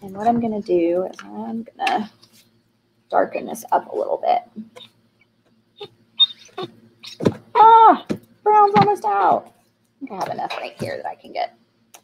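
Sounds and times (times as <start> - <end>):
squeeze bottle squeak: 6.2 - 7.3.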